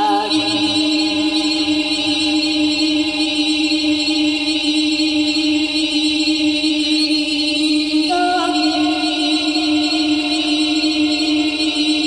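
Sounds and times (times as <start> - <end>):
low electronic drone: 0.0 - 12.0.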